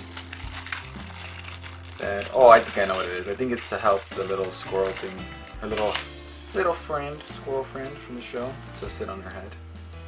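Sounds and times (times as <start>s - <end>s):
plastic packaging crinkling: 0.0s - 9.0s
soft background music: 0.0s - 10.0s.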